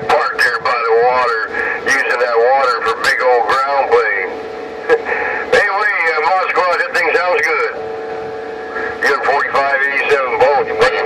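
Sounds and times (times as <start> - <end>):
garbled radio voices: 0.0 - 7.8, 8.4 - 11.0
steady radio tones: 0.0 - 11.0.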